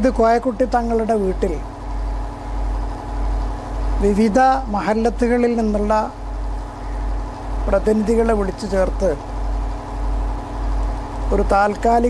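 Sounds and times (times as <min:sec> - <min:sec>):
person speaking: 0:00.0 - 0:01.7, 0:04.0 - 0:06.2, 0:07.6 - 0:09.3, 0:11.2 - 0:12.0
low pulsing mechanical hum: 0:00.0 - 0:12.0.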